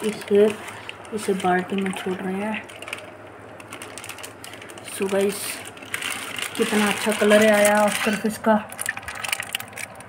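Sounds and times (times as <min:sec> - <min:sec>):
plastic bag rustling in water: 0:00.0 - 0:10.0.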